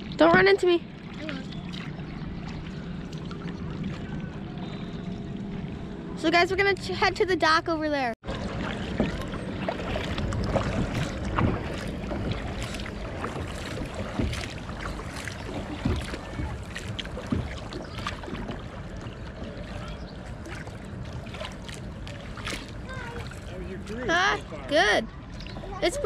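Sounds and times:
paddle splashing in water: 0.0 - 5.7, 8.2 - 24.6
water lapping against plastic hull: 0.0 - 26.0
wind rumbling on microphone: 8.2 - 23.8.

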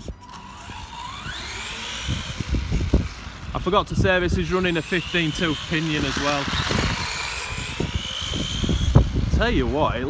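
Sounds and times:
electric motor whining: 0.0 - 10.0.

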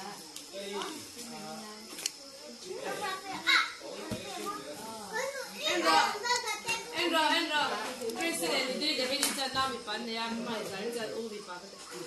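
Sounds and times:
children chattering and playing: 0.0 - 12.0.

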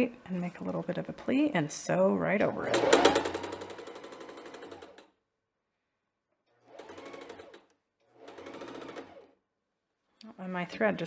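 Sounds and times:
sewing machine stitching: 2.5 - 5.2, 6.5 - 9.4.

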